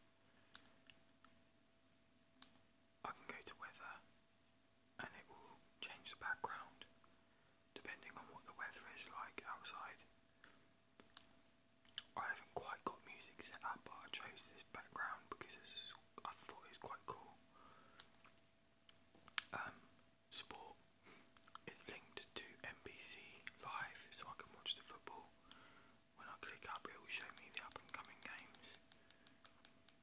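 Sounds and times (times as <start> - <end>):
faint steady hum: 0.0 - 30.0
man whispering: 3.0 - 4.1, 5.0 - 6.9, 7.8 - 10.1, 12.0 - 17.4, 19.4 - 20.8, 21.5 - 25.4, 26.2 - 28.8.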